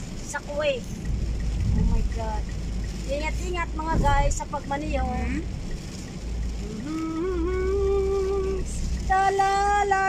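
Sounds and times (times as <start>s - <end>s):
car driving in heavy rain: 0.0s - 10.0s.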